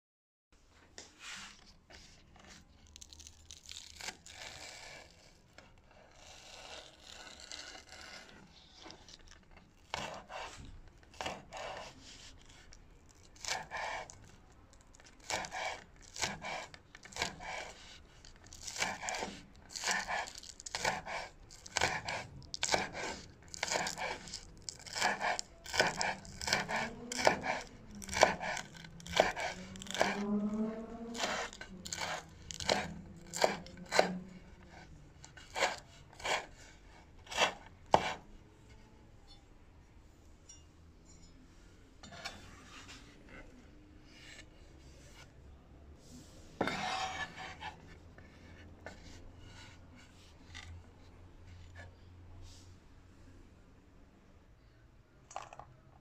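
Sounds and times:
knife slicing spring onions: 9.9 - 12.7, 13.4 - 14.2, 15.0 - 30.2, 31.1 - 38.2.

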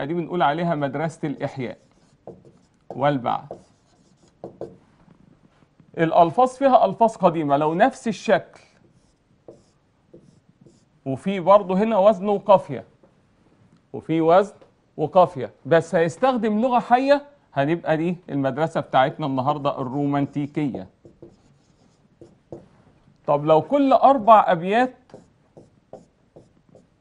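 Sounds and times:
marker drawing on whiteboard: 0.7 - 4.8, 7.9 - 10.9, 19.8 - 22.8, 24.0 - 27.0.

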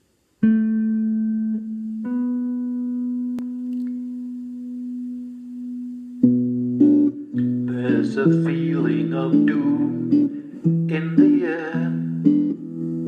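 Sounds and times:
electric guitar notes ringing: 0.4 - 13.0.

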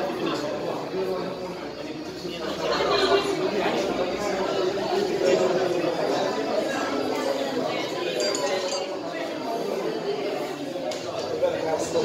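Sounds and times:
people talking: 0.0 - 12.0
light clinks: 8.1 - 9.0.

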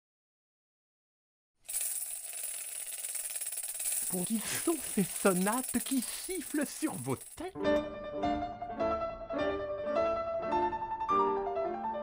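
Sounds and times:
rattlesnake rattle buzzing: 1.7 - 7.4.

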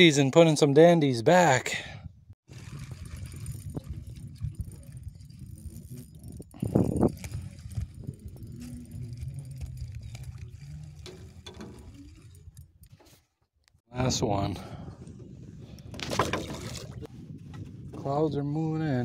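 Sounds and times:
wind rumbling on microphone: 2.0 - 13.1, 13.9 - 19.0.

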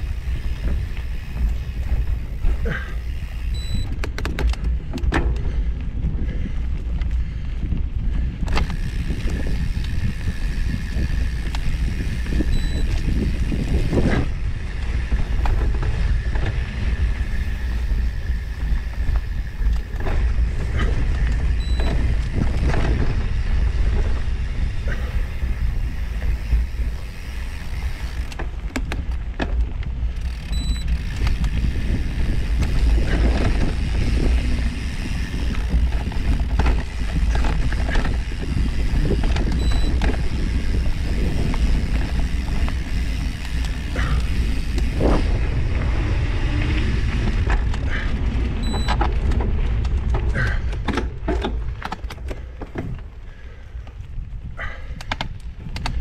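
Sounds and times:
bicycle tyres rumbling on dirt: 0.0 - 56.0
bike clicks and rattles: 0.0 - 56.0
wind on microphone: 0.0 - 56.0.

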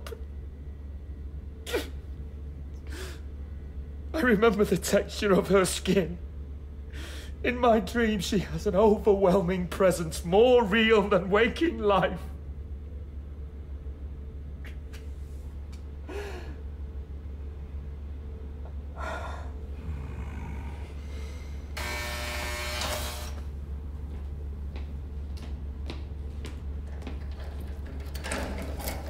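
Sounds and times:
steady low hum: 0.0 - 29.0
man breathing sharply: 6.9 - 7.4, 20.8 - 21.8
person gasping: 16.1 - 16.6, 19.0 - 21.7.

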